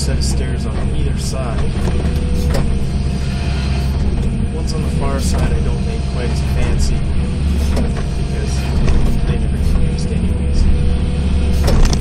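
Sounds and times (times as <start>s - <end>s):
excavator engine and hydraulics: 0.0s - 12.0s.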